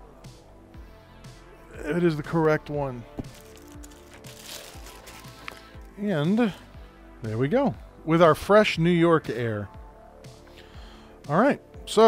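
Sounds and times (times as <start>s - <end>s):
background music: 0.0s - 12.0s
metallic bag crinkling: 3.2s - 5.9s.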